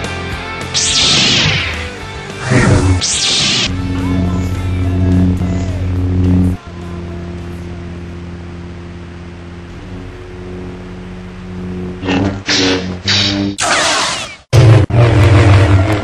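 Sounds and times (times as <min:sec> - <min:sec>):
lightsaber electric hum: 0:00.0 - 0:16.0.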